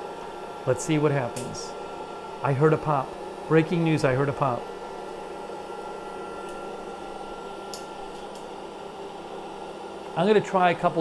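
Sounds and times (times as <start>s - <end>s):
popcorn popper fan blowing: 0.0s - 11.0s.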